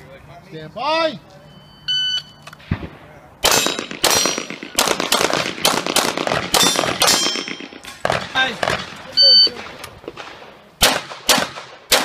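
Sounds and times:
electronic start beep: 0:01.5 - 0:02.4, 0:09.2 - 0:09.6
rapid handgun shots: 0:02.6 - 0:09.0, 0:09.6 - 0:12.0.

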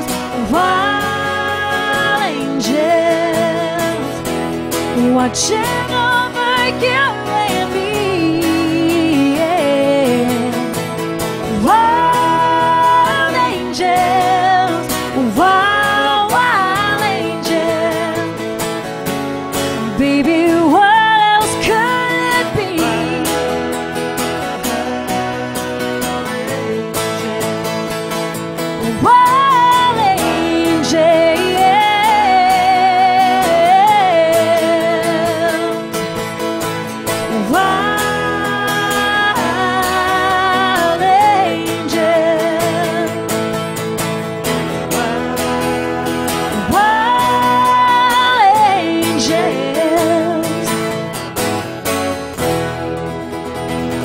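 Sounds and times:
woman singing with vibrato: 0:00.0 - 0:19.0, 0:19.6 - 0:51.3
strummed acoustic guitar: 0:00.0 - 0:54.0.

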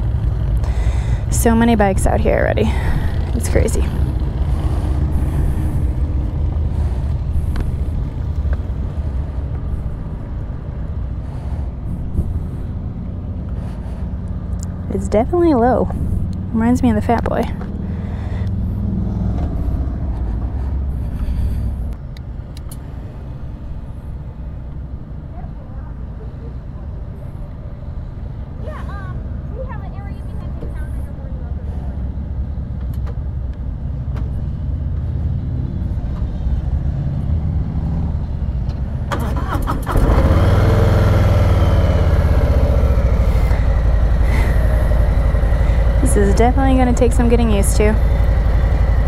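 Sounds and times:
motorcycle engine idling: 0:00.0 - 0:11.3, 0:41.2 - 0:49.0
nearby motorcycle engine: 0:39.9 - 0:49.0.

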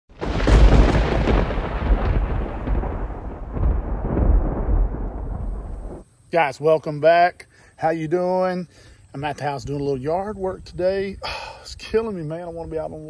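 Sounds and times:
rolling thunder rumbling: 0:00.1 - 0:06.0
thunder crack: 0:00.1 - 0:06.0.

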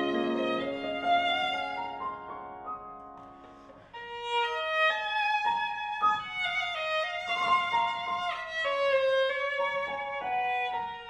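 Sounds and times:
piano accompaniment: 0:00.0 - 0:11.0
violin melody: 0:00.0 - 0:11.0.

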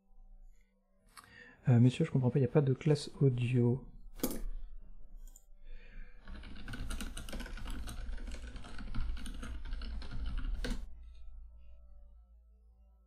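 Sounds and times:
rapid typing on a keyboard: 0:06.2 - 0:10.9.

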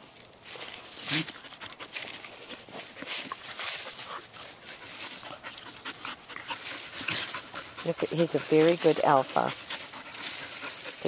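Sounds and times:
scuffling in leaves: 0:00.0 - 0:11.0
dogs panting and huffing: 0:01.2 - 0:11.0.

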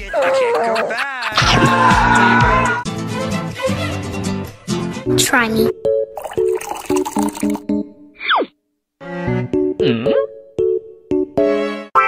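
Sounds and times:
background music: 0:01.3 - 0:08.2, 0:09.0 - 0:12.0
liquid pouring into mug: 0:06.2 - 0:07.6.

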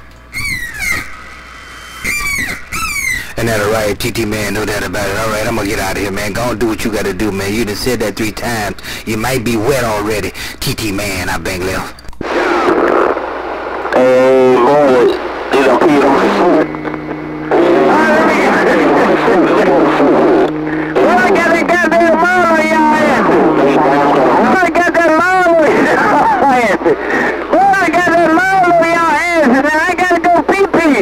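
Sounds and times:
steady low tones: 0:01.0 - 0:30.4
garbled radio voices: 0:02.0 - 0:31.0.

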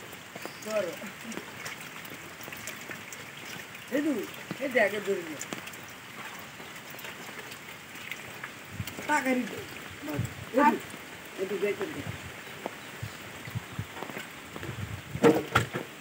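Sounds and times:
rain pattering into a puddle: 0:00.0 - 0:16.0.

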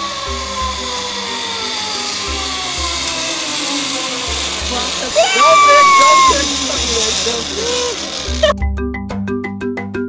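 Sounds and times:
pulley whining along cable: 0:00.0 - 0:08.6.

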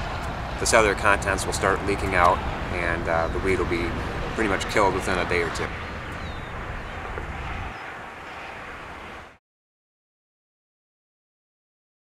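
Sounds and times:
wind on microphone: 0:00.0 - 0:09.4.

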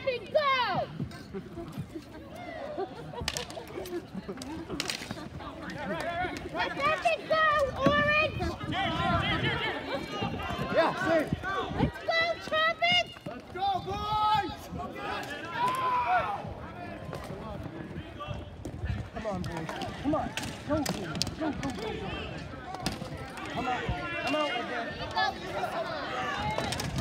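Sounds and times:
people calling out and shouting: 0:00.0 - 0:01.1, 0:05.3 - 0:27.0
plastic sticks and ball clacking: 0:03.2 - 0:06.5.

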